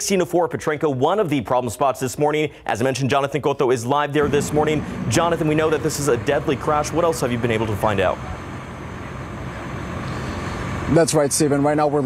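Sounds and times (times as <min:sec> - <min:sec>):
highway traffic noise: 0:04.1 - 0:12.0.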